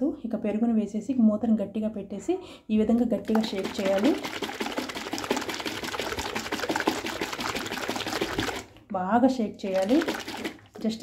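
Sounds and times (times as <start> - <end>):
curd sloshing in shaken plastic container: 3.2 - 8.9, 9.6 - 11.0.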